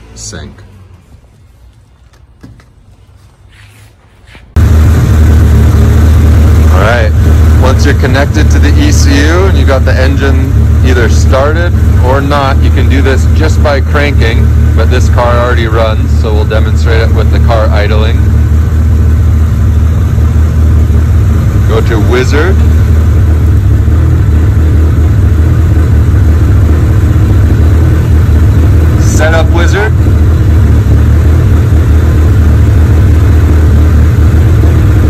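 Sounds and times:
turbo engine idling: 0:04.6 - 0:35.0.

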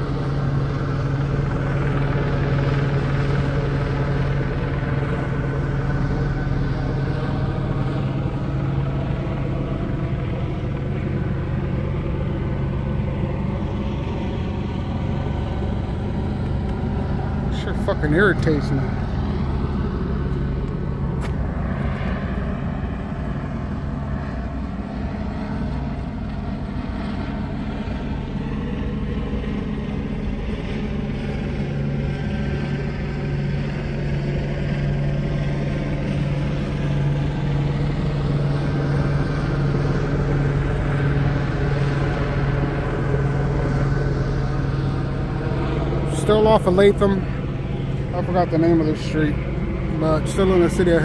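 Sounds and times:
helicopter rotor and engine drone: 0:00.0 - 0:51.0.

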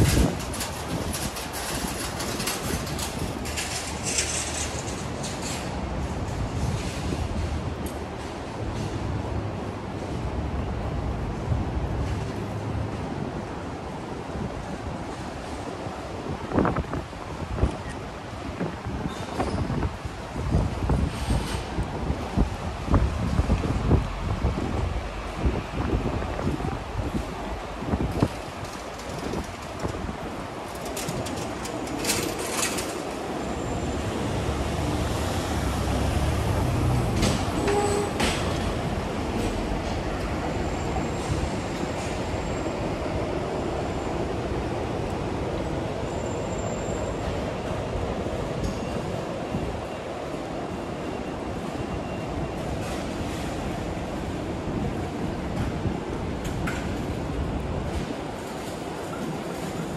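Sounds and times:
wind buffeting microphone: 0:00.0 - 0:46.0
low rumble of traffic: 0:00.0 - 0:59.9.

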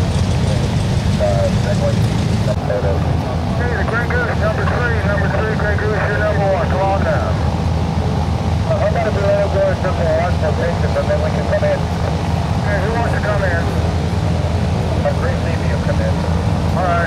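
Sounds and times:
propeller engines droning: 0:00.0 - 0:17.0
people talking: 0:01.2 - 0:07.4, 0:08.7 - 0:12.0, 0:12.6 - 0:13.8, 0:15.0 - 0:16.2, 0:16.8 - 0:17.0.

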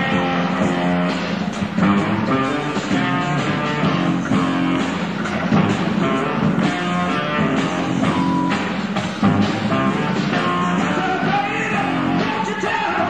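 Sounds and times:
electric guitar riff: 0:00.0 - 0:12.5
bass and drums: 0:00.0 - 0:13.0.

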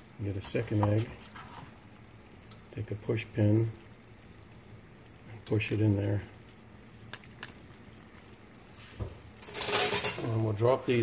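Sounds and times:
water boiling gently: 0:00.0 - 0:11.0.

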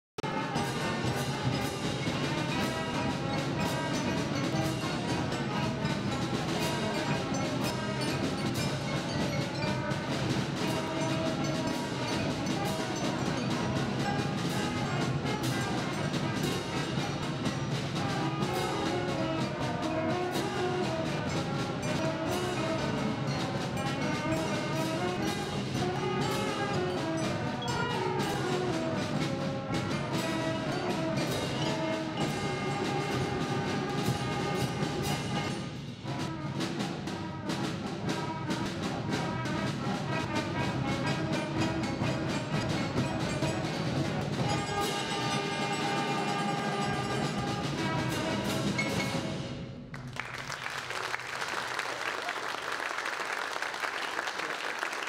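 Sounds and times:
concert band playing: 0:00.2 - 0:55.0
timpani: 0:00.2 - 0:55.0.

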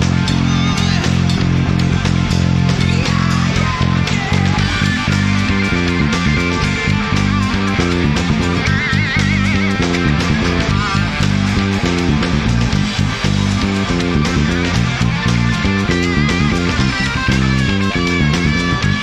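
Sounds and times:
electric guitar with wide vibrato: 0:00.0 - 0:19.0
fingerstyle electric bass: 0:00.0 - 0:19.0
rock band with drums: 0:00.0 - 0:19.0.

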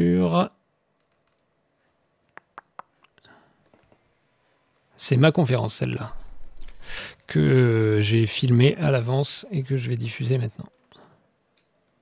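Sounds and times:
faint high-pitched chirps: 0:00.7 - 0:04.6.

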